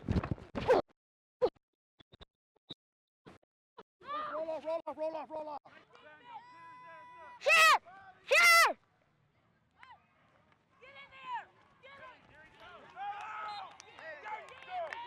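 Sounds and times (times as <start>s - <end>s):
child shouting: 6.6s - 8.8s.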